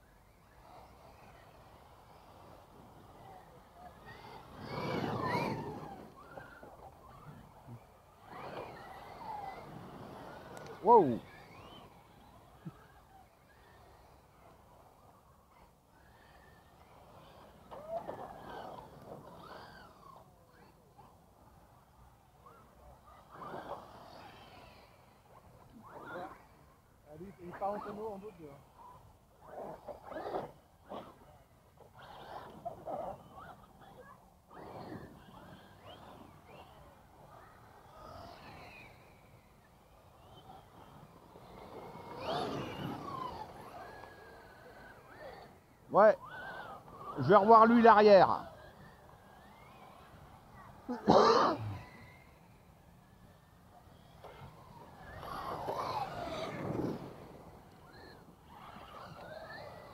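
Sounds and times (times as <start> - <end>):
rc truck motors whining: 0.0 - 59.9.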